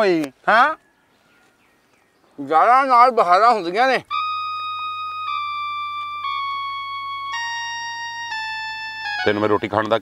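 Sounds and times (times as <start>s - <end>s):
keyboard playing sustained notes: 4.0s - 10.0s.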